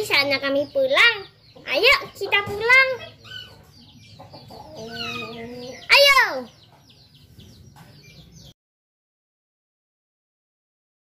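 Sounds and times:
chickens calling: 0:00.0 - 0:08.6.

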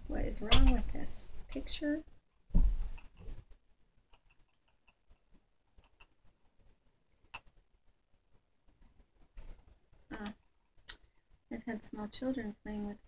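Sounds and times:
low thump: 0:02.5 - 0:02.9.

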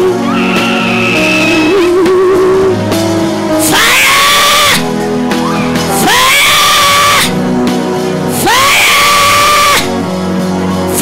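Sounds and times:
keyboard chords: 0:00.0 - 0:11.0
loud rising screams: 0:00.2 - 0:01.9, 0:03.6 - 0:07.4, 0:08.4 - 0:09.9.

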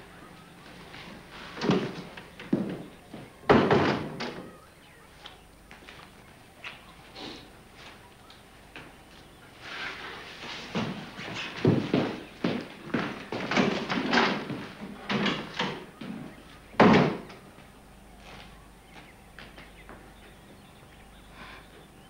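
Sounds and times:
door slamming shut: 0:03.5 - 0:04.5, 0:16.8 - 0:17.4.

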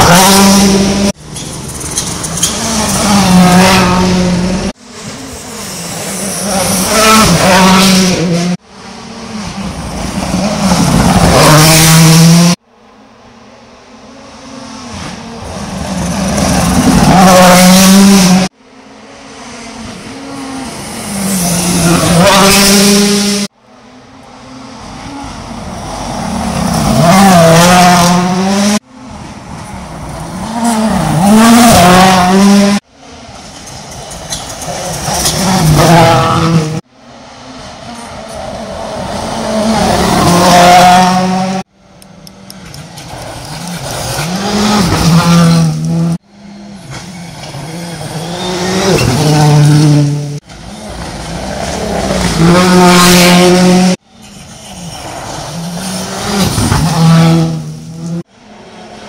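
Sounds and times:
rally cars passing at speed: 0:00.0 - 0:59.0.

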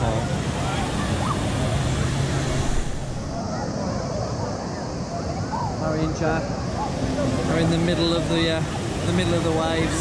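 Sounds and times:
distant crowd voices: 0:00.0 - 0:10.0.

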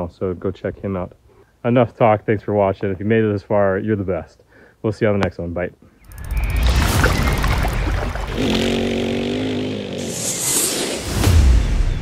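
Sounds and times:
buzzing motor-like tone: 0:06.1 - 0:10.5.

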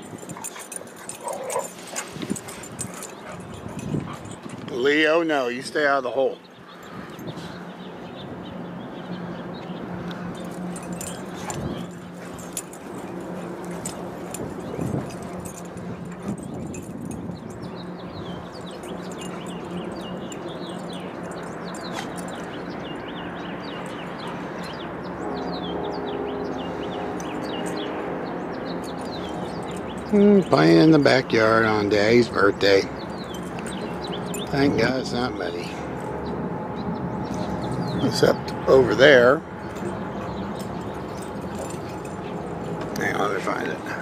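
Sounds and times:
small birds chirping: 0:00.0 - 0:43.8
outdoor background noise: 0:00.0 - 0:44.0.

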